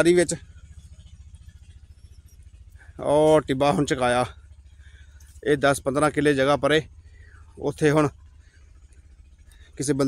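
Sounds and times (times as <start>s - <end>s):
man talking: 0.0s - 0.4s, 3.0s - 4.3s, 5.4s - 6.9s, 7.6s - 8.1s, 9.8s - 10.0s
engine running steadily: 0.0s - 10.0s.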